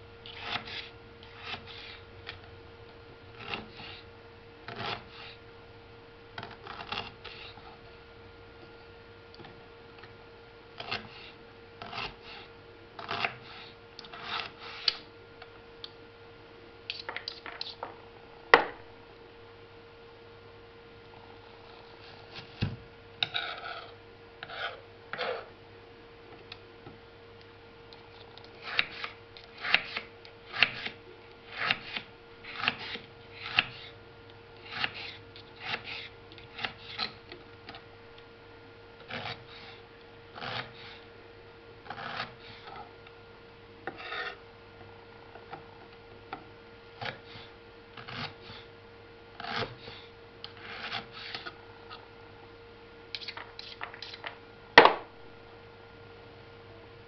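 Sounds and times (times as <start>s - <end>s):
faint steady hum: 0.0s - 57.0s
knife slicing onion on wooden board: 28.6s - 34.0s, 34.6s - 37.1s.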